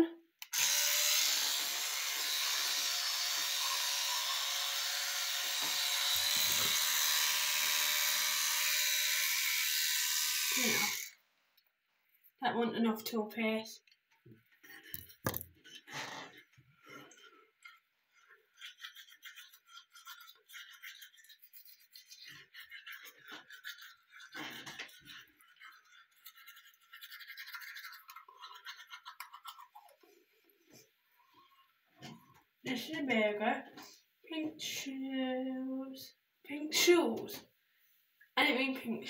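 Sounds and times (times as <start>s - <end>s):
electric toothbrush scrubbing teeth: 0.4s - 11.2s, 18.5s - 29.6s.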